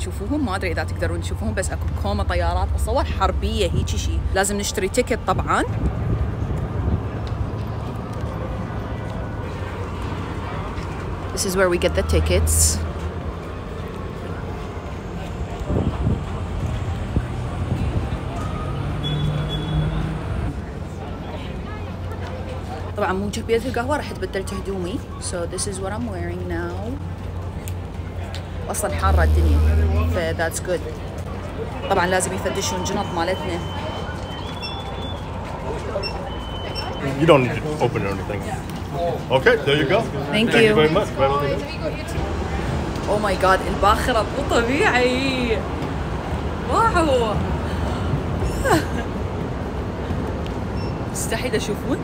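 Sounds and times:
faint voices: 0:20.0 - 0:50.3.

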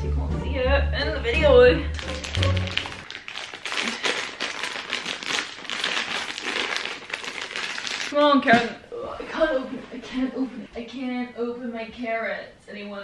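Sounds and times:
background music with bass: 0:00.0 - 0:03.0.

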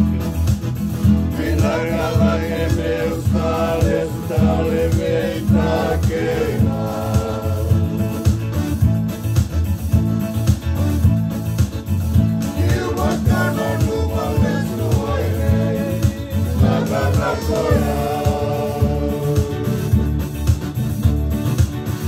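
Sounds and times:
bass line: 0:00.0 - 0:22.0
electronic keyboard: 0:00.0 - 0:22.0
strummed acoustic guitar: 0:00.0 - 0:22.0
men singing: 0:01.3 - 0:08.5, 0:12.4 - 0:20.3.

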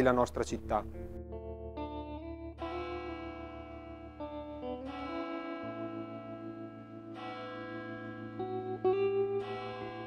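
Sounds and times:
large church bell ringing: 0:02.6 - 0:10.0.

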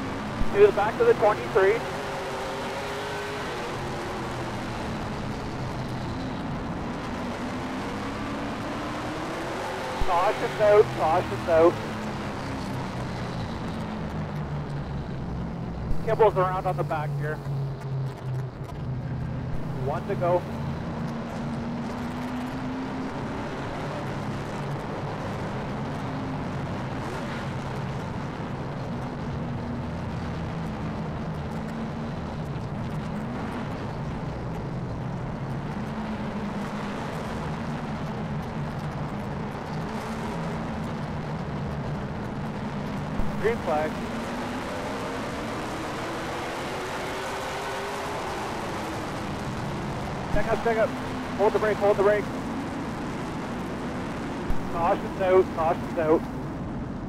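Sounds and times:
race car engine running: 0:00.0 - 0:56.8.

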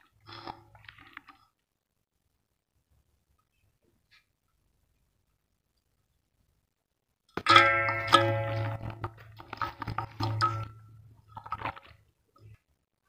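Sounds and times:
metal basin knocked and ringing: 0:07.4 - 0:11.0.

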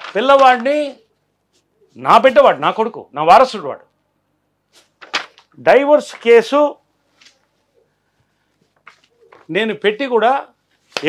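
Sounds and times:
man speaking: 0:00.1 - 0:01.1, 0:02.0 - 0:03.9, 0:05.6 - 0:06.8, 0:09.5 - 0:10.6.

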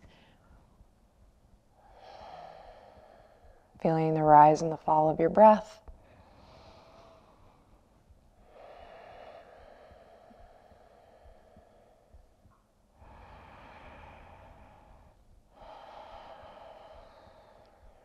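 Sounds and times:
woman breathing deeply: 0:00.0 - 0:00.9, 0:01.7 - 0:03.8, 0:05.9 - 0:18.0.

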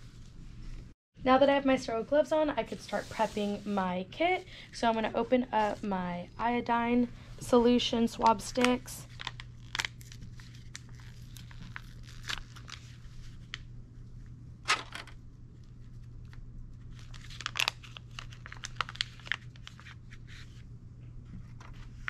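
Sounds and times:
steady low hum: 0:00.0 - 0:22.0
packaging crinkling and tearing: 0:08.3 - 0:13.6, 0:15.8 - 0:20.6.

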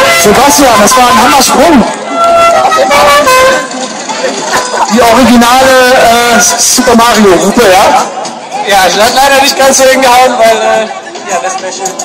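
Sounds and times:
novelty horn honking: 0:00.0 - 0:07.5.

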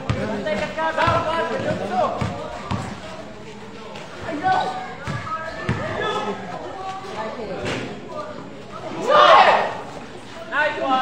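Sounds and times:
people shouting: 0:09.0 - 0:09.8.

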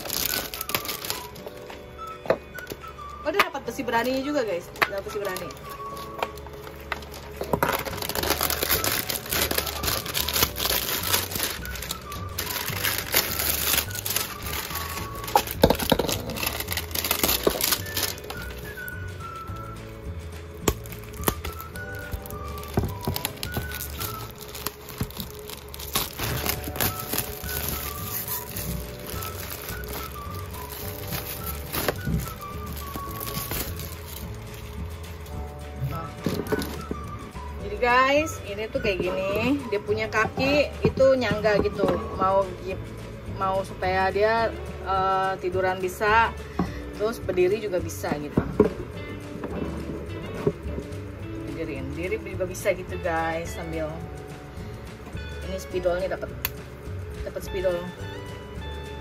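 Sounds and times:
plastic wrap crinkling and tearing: 0:00.0 - 0:01.9, 0:04.9 - 0:19.8, 0:20.5 - 0:37.5
background music: 0:00.0 - 0:59.0.

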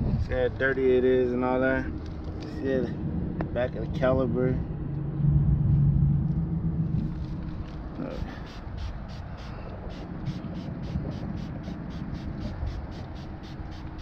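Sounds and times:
spray bottle hissing: 0:08.2 - 0:14.0.

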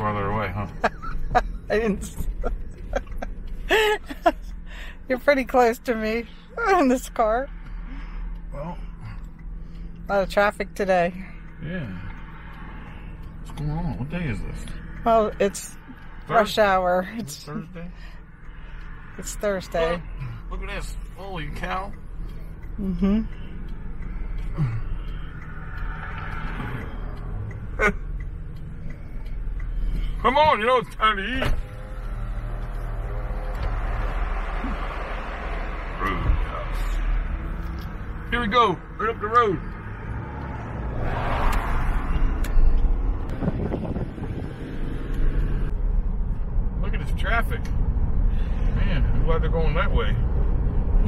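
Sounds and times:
car engine and road noise: 0:00.0 - 0:51.0.

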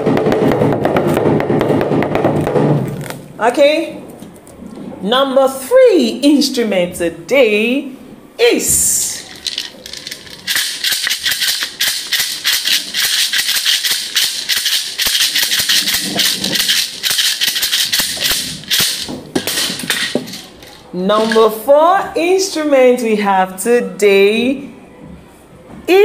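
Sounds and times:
bead shaker rattling: 0:09.0 - 0:21.6.

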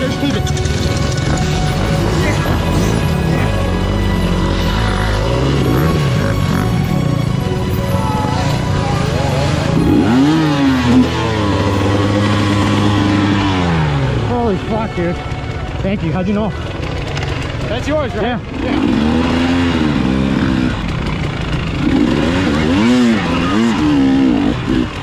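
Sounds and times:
dirt bike engine revving: 0:00.0 - 0:25.0.

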